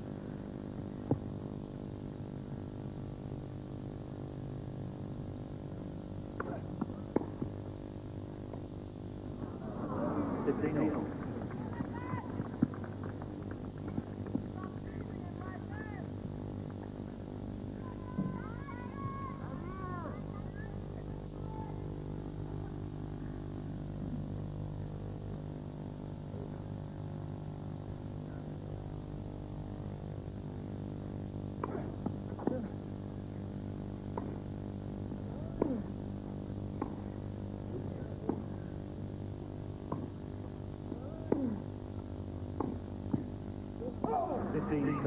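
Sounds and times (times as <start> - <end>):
steady low hum: 0.0 - 45.0
tennis racquets hitting ball: 31.6 - 32.6, 34.2 - 34.4, 42.6 - 43.3.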